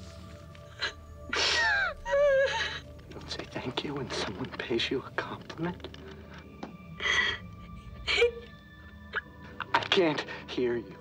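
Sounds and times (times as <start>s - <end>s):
soft background music: 0.0s - 11.0s
young woman sobbing: 0.6s - 3.1s, 6.9s - 9.7s.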